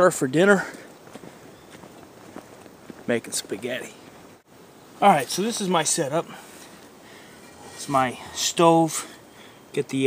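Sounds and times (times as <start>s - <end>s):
faint footsteps: 0.5s - 4.5s, 6.2s - 8.4s.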